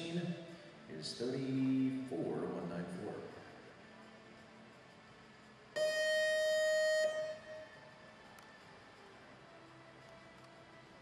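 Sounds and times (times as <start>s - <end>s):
start buzzer tone: 5.8s - 7.7s.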